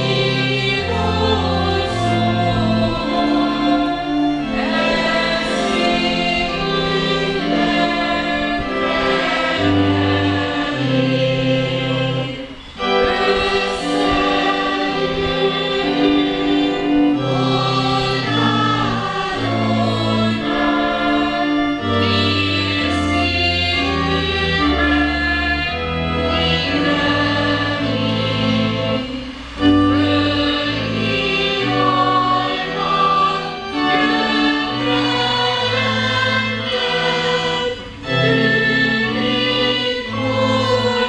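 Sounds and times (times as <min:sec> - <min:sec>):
choir singing a hymn: 0:00.0 - 0:41.0.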